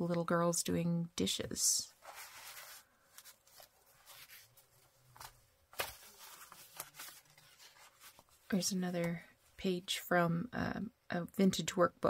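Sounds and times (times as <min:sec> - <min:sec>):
paper pages rustling: 0:01.9 - 0:08.7.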